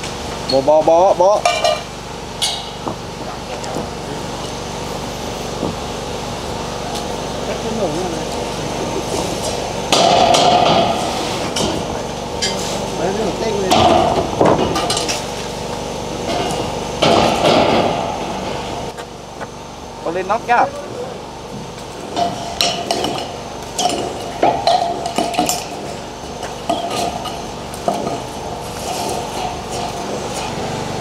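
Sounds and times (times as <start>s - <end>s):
metal beams knocking and scraping: 9.1s - 12.8s, 13.6s - 15.3s, 16.2s - 18.7s, 22.0s - 30.6s.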